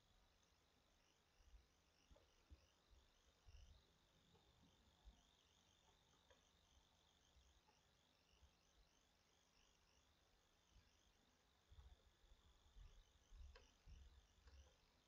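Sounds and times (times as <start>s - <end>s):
faint high-pitched chirping: 0.0s - 15.0s
soft low thumps: 12.7s - 14.7s.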